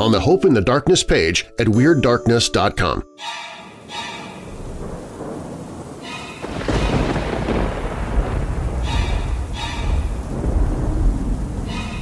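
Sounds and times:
thunder rumbling: 4.3s - 12.0s.

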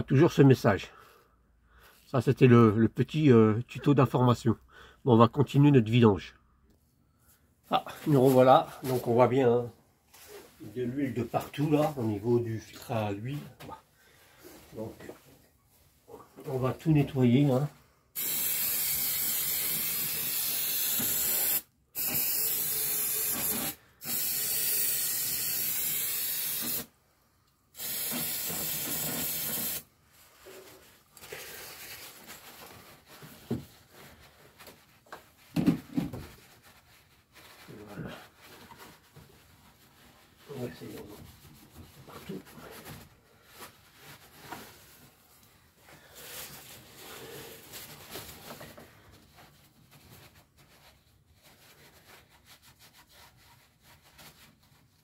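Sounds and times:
aerosol spray hissing: 18.2s - 26.9s, 27.8s - 29.9s.

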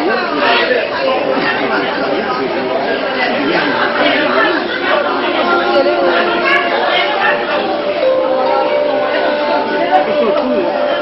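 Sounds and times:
indistinct chatter: 0.0s - 11.0s.

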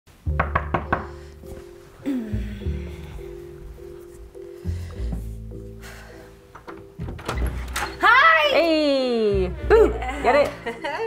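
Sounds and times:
background music with low bass: 0.1s - 11.0s.

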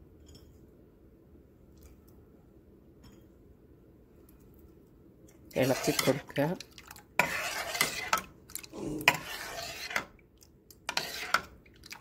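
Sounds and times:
spoon stirring batter in metal bowl: 5.3s - 12.0s.

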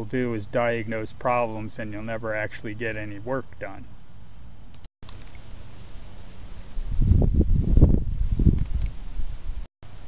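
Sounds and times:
high-pitched insect song: 0.0s - 10.0s.

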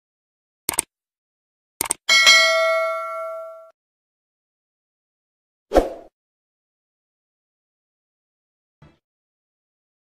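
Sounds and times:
mouse clicks: 0.7s - 0.9s
notification bell ding: 2.1s - 3.7s.

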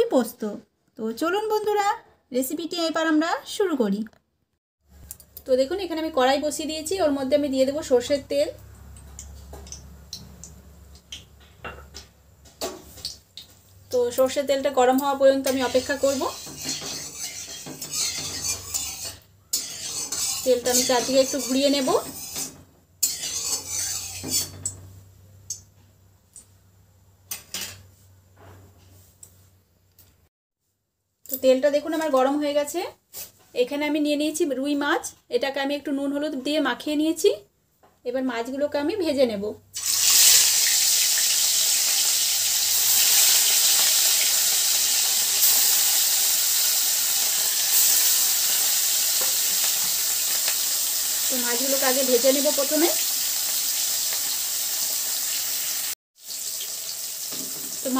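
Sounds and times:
fish sizzling in hot oil: 14.9s - 24.7s, 39.8s - 57.9s
spatula scraping metal pan: 15.4s - 24.7s
spatula clinking on pan: 15.5s - 24.7s.

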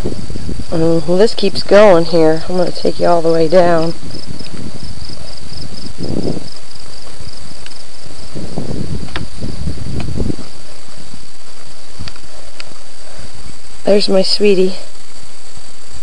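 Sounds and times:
low rumbling from carried camera: 0.0s - 14.8s
insects trilling: 0.0s - 16.0s.

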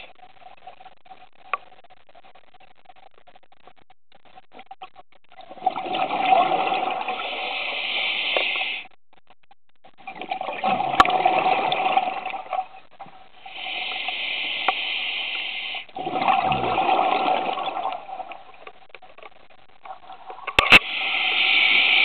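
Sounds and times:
exhaled bubbles gurgling underwater: 5.3s - 8.8s, 9.9s - 19.0s
regulator hiss on inhale: 7.1s - 9.0s, 13.4s - 15.9s, 20.6s - 22.0s.

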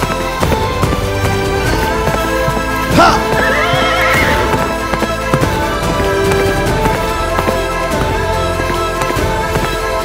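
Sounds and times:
dramatic background music: 0.0s - 10.0s
galloping hooves: 0.0s - 10.0s
horse neighing: 2.8s - 4.9s.

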